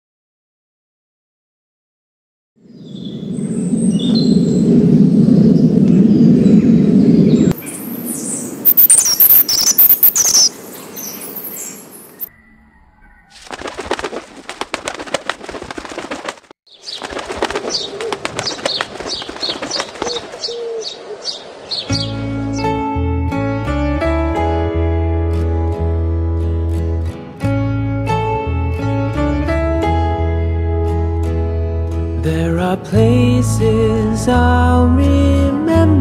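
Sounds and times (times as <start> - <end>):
loud low rumble: 2.9 - 7.6
high bird chirps: 5.3 - 13.4, 17.7 - 22.8
quick high repeated bird notes: 7.6 - 12.3
wings fluttering: 13.1 - 21.8.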